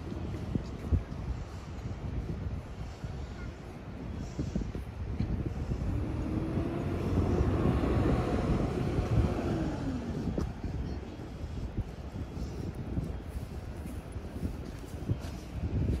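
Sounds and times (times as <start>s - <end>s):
wind rumble on microphone: 0.0s - 16.0s
vehicle passing by: 5.4s - 10.8s.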